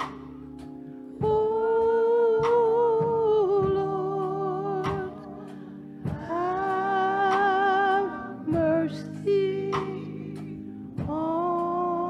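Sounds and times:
sustained organ chords: 0.0s - 12.0s
church choir singing a hymn: 1.4s - 12.0s.

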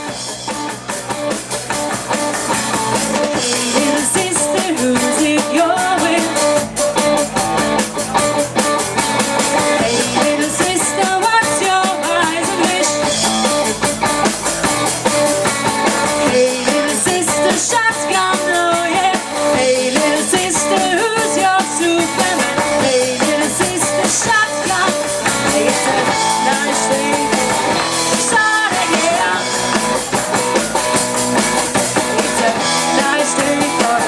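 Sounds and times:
bass guitar: 0.0s - 34.0s
drum kit fast beat: 0.0s - 34.0s
electric guitars: 0.0s - 34.0s
female lead vocal: 3.4s - 6.6s, 9.7s - 13.2s, 16.2s - 29.7s, 32.2s - 34.0s.

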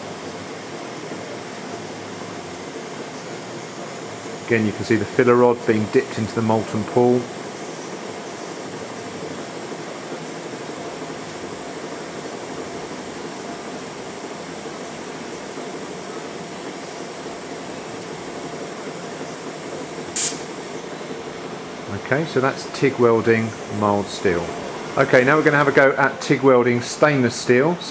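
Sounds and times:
sharp hiss: 20.0s - 21.0s
welding arc hissing: 20.0s - 21.5s.

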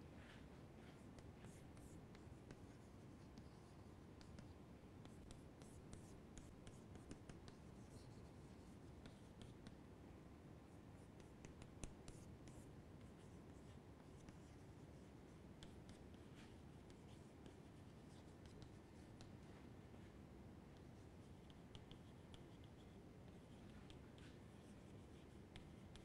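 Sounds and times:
low room hiss: 0.0s - 26.0s
chalk writing on chalkboard: 0.2s - 9.8s, 11.0s - 19.6s, 20.7s - 26.0s.

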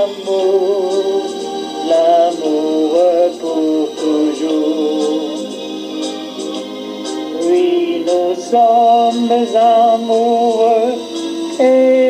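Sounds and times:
instrumental backing music: 0.0s - 12.0s
person singing a love song: 0.0s - 12.0s.

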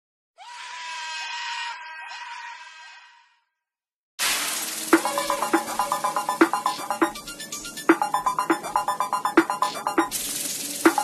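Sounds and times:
harsh scream-like cry: 0.4s - 3.4s.

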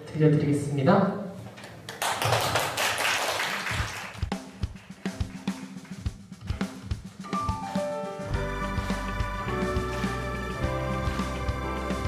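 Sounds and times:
drum kit beat: 3.6s - 12.0s
higher notes: 7.2s - 12.0s
sustained pitched chords: 8.4s - 12.0s.

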